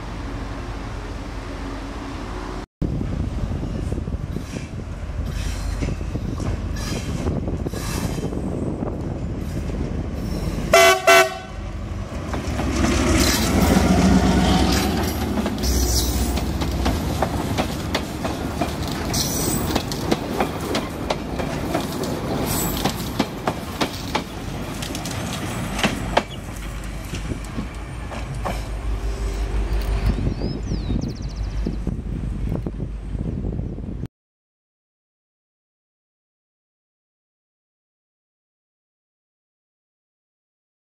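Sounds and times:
diesel locomotive engine passing: 0.0s - 34.0s
train horn toot: 10.7s - 11.7s
train wheels clicking over rail joints: 12.1s - 30.2s.

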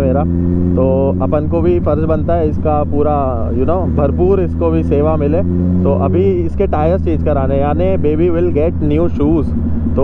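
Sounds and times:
man talking: 0.0s - 10.0s
motorcycle and road drone: 0.0s - 10.0s.

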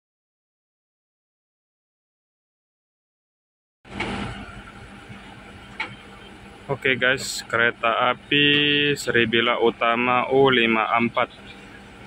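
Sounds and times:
diesel locomotive idling: 3.9s - 12.0s.

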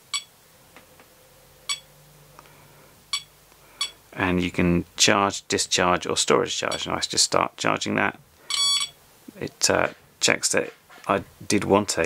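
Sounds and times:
short electronic beeps: 8.5s - 9.0s.

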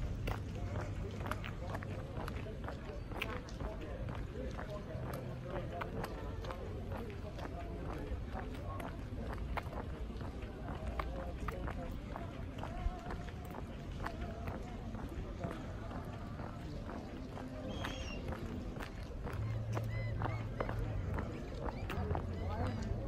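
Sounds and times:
footsteps on cobblestones: 0.0s - 23.0s
people talking: 0.0s - 23.0s.

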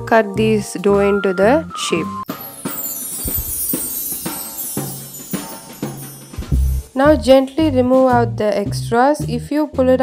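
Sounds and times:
steady drum beat: 1.6s - 7.3s.

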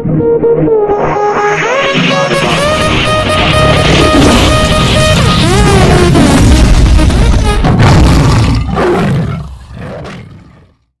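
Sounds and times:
big cat roar: 7.7s - 10.9s.

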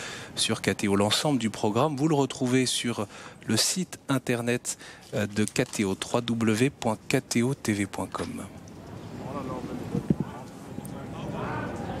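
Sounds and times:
distant people talking: 8.0s - 12.0s.

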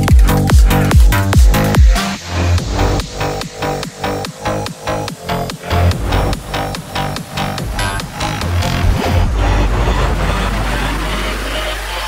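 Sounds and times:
hissing synth noise wash: 1.7s - 12.0s
deep synth bass note: 2.6s - 11.9s.

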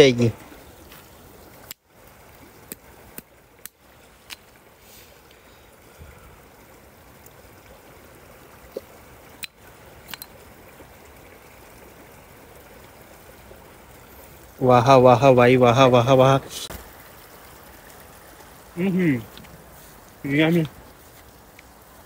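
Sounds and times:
stream running: 0.0s - 22.0s.

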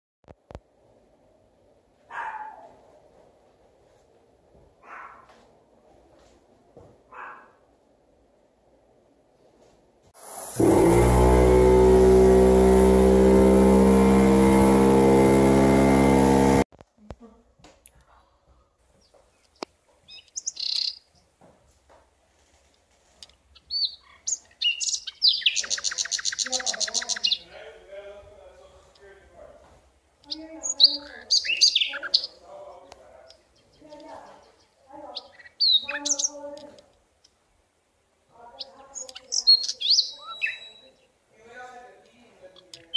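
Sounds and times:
dog barking: 2.1s - 2.8s, 4.8s - 5.4s, 7.1s - 7.6s
small bird chirping: 19.0s - 21.3s, 23.5s - 27.8s, 30.2s - 37.4s, 38.4s - 41.2s
rapid bird trill: 23.7s - 27.5s, 30.6s - 32.4s, 38.6s - 41.0s.

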